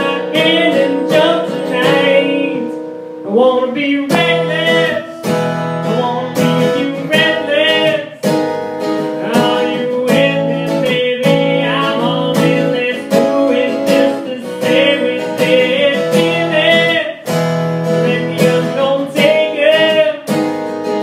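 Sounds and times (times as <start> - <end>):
man singing: 0.0 - 8.4, 9.0 - 20.5
acoustic guitars strumming: 0.0 - 21.0.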